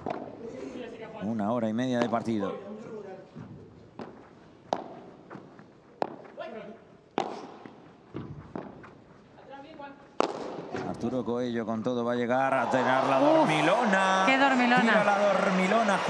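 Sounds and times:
ball bouncing on court: 3.4s - 6.4s, 7.2s - 8.9s, 10.2s - 11.0s
rackets hitting ball: 4.0s - 6.4s, 7.1s - 9.0s, 10.2s - 10.9s.

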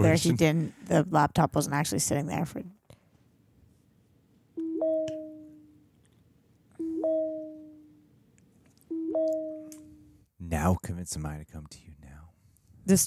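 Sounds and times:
two-note computer alert chime: 4.6s - 5.6s, 6.8s - 7.9s, 8.9s - 10.1s.

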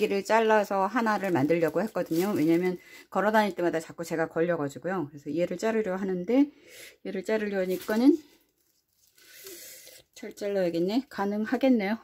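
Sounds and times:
faint handling rustle: 7.5s - 9.4s.

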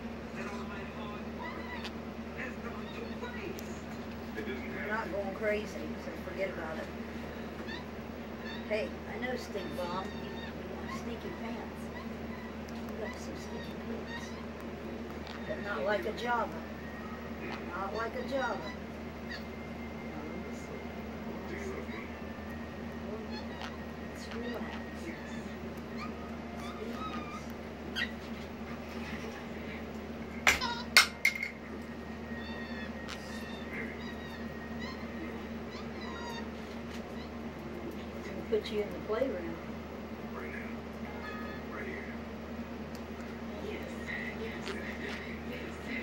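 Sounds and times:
steady low hum: 0.0s - 46.0s
monkey high squeaks: 7.6s - 8.7s, 25.9s - 28.4s, 32.4s - 37.4s
monkey squeaking: 7.6s - 8.7s, 9.6s - 14.6s, 17.7s - 19.6s, 23.2s - 28.4s, 32.4s - 37.4s.

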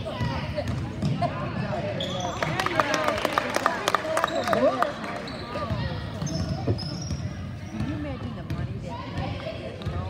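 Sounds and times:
voices in a gym: 0.0s - 10.0s.

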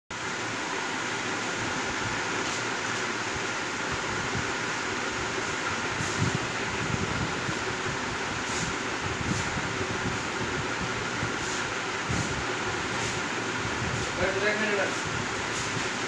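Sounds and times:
steady rushing noise: 1.2s - 16.0s.

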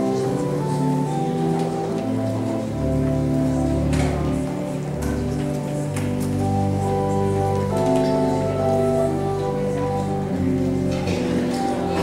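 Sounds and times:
slow sustained chords: 0.0s - 12.0s.

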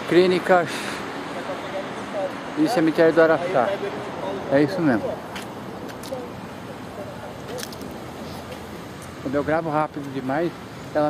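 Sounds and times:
distant city noise: 0.0s - 11.0s.

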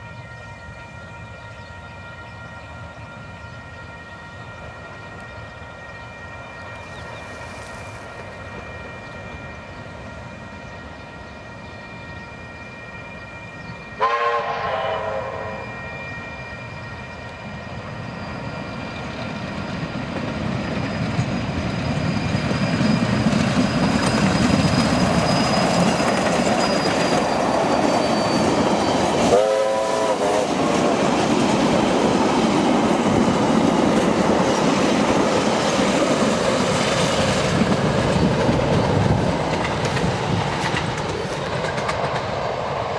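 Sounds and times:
train running with wheel clatter: 0.0s - 42.9s
steam locomotive whistle: 10.6s - 19.0s, 23.8s - 30.8s.

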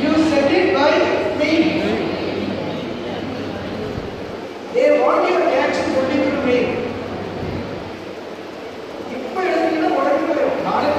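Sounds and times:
person speaking: 0.0s - 7.1s, 9.1s - 10.9s
background din of a hall: 0.0s - 10.9s.

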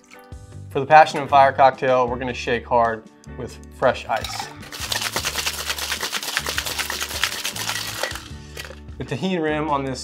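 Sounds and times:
ice rattling in cocktail shaker: 4.2s - 8.8s.

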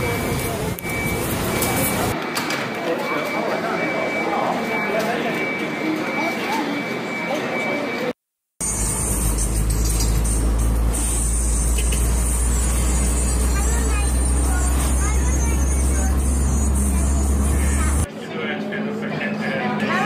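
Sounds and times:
car engine and road noise: 8.6s - 18.1s.

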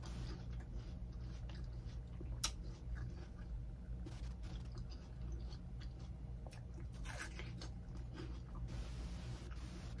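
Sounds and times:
wet chewing clicks and smacks: 0.0s - 8.7s
steady low hum: 0.0s - 10.0s.

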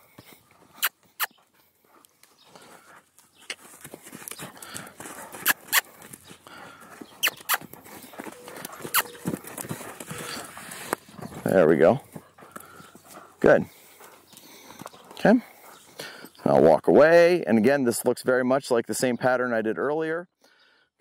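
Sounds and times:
horse hooves on sand: 0.0s - 18.3s.

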